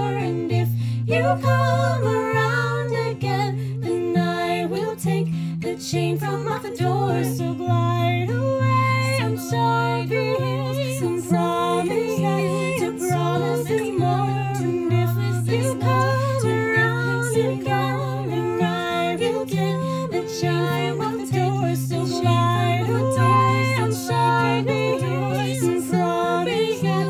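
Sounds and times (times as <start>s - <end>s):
acoustic guitar: 0.0s - 27.0s
women singing together: 0.0s - 27.0s.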